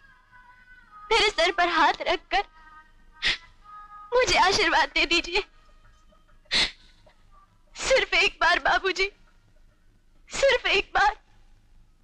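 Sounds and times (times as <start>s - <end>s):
woman sobbing: 1.1s - 2.5s, 4.1s - 10.8s.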